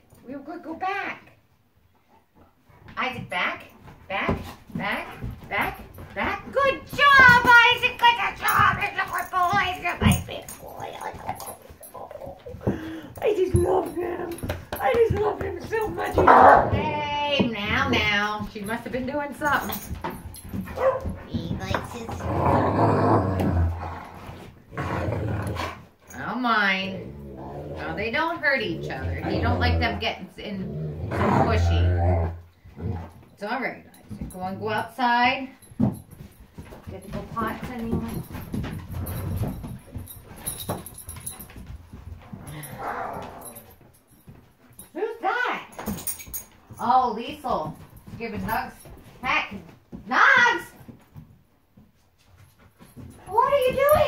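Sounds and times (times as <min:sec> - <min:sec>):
dogs shuffling and scuffling: 0:00.0 - 0:54.0
dog growling: 0:10.2 - 0:13.1, 0:21.7 - 0:25.8, 0:26.9 - 0:33.1, 0:42.5 - 0:43.6
breathy dog sound: 0:10.4 - 0:13.2, 0:42.3 - 0:43.7.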